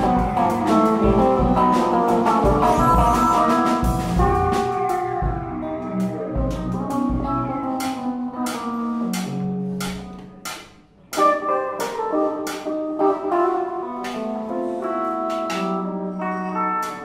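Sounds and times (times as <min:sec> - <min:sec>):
drum kit with cymbal strikes: 0:00.0 - 0:17.0
electric guitar: 0:00.0 - 0:17.0
keyboard notes: 0:00.0 - 0:17.0.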